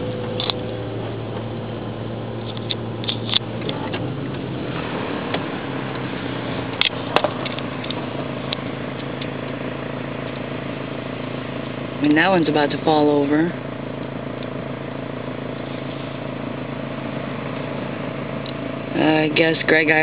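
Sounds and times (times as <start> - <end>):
car engine and tyre hum: 0.0 - 20.0.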